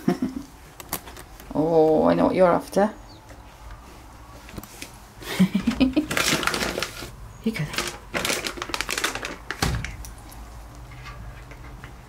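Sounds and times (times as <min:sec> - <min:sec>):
plastic bag crackling: 0:05.6 - 0:10.8.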